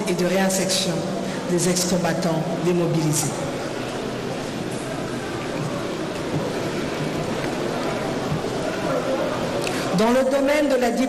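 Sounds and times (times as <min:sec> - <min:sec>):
assembly hall background noise: 0:00.0 - 0:11.0.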